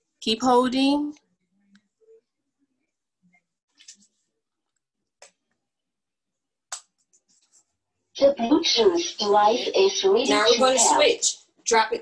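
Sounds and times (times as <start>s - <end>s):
woman speaking: 0.2s - 1.2s, 8.2s - 12.0s.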